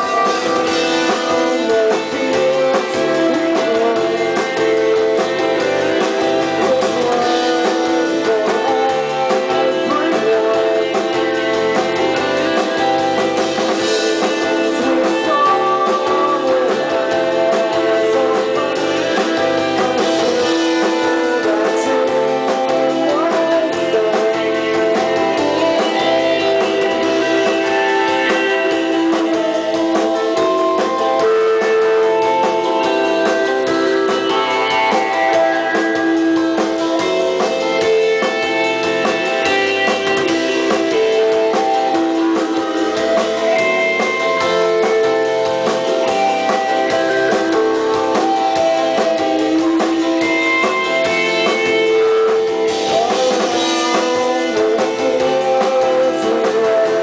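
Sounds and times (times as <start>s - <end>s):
rock band playing live: 0.0s - 57.0s.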